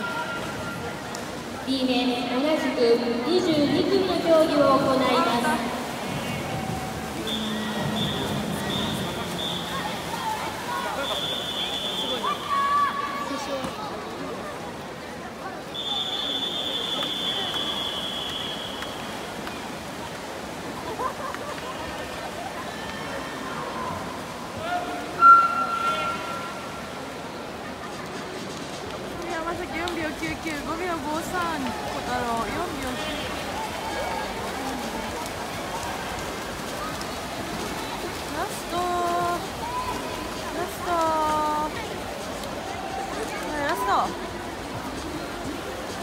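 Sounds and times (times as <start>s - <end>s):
water splashing: 0.0s - 46.0s
crowd shouting and cheering: 6.1s - 13.7s.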